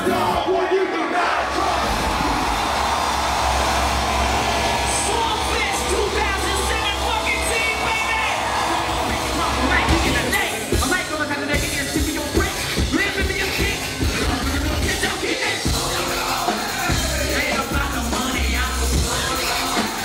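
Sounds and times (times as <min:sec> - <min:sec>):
crowd cheering: 0:00.0 - 0:20.0
voices rising above crowd: 0:00.0 - 0:20.0
band music with low bass: 0:01.5 - 0:20.0.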